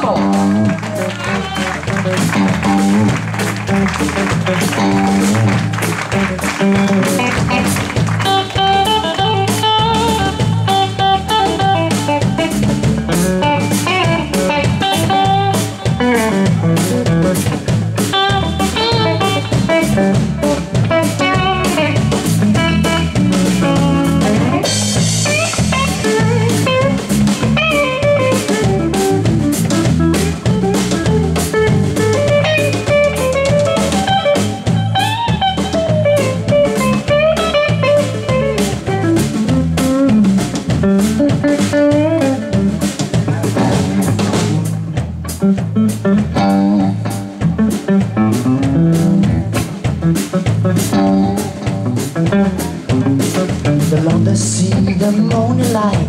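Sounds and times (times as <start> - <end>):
electric guitar solo: 0.0 - 53.9
drum kit beat: 0.0 - 56.0.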